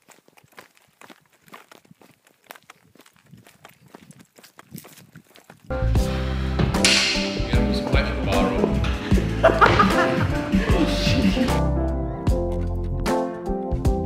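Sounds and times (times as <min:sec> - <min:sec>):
rustling undergrowth: 0:00.0 - 0:05.7
footsteps in long grass: 0:00.0 - 0:05.8
loud music with heavy beat: 0:08.3 - 0:11.6.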